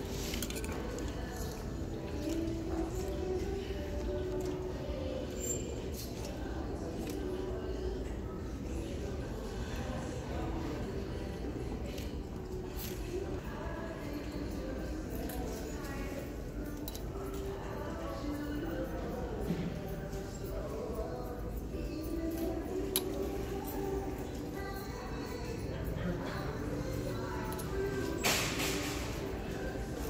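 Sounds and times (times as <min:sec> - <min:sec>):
faint background music: 0:00.0 - 0:30.0
indistinct background voices: 0:00.0 - 0:30.0.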